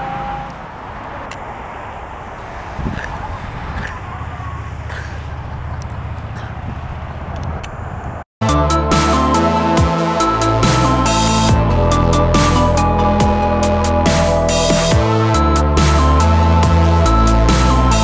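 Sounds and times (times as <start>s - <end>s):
low rumble of car in motion: 0.0s - 8.3s.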